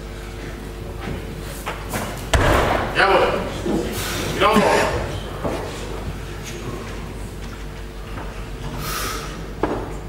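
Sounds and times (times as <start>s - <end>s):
barbell landing thump: 2.3s - 3.4s.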